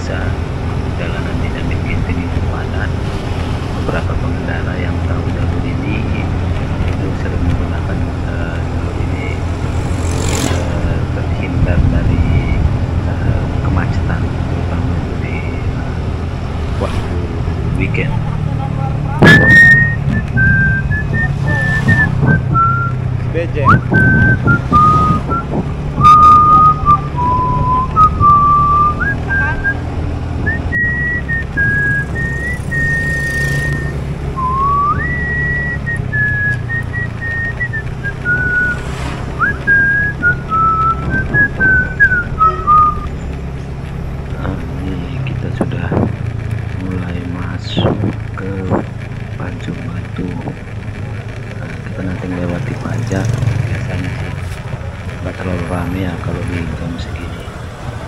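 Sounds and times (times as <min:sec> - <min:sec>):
motorcycle engine humming: 0:00.0 - 0:58.0
person whistling a slow tune: 0:19.2 - 0:23.0, 0:23.7 - 0:29.8, 0:30.5 - 0:38.8, 0:39.4 - 0:43.1.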